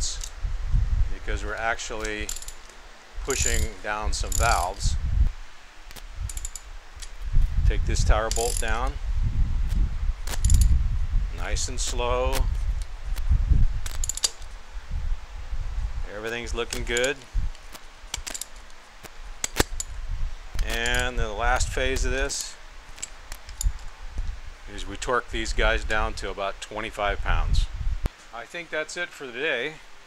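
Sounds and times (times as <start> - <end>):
socket ratchet clicking: 2.0 - 4.8, 5.9 - 7.2, 8.3 - 8.8, 10.2 - 10.8, 13.8 - 14.6, 16.3 - 20.0, 20.6 - 21.1, 21.9 - 23.9.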